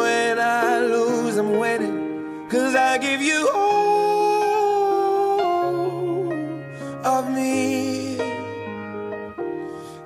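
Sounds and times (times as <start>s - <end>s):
person singing: 0.0s - 10.0s.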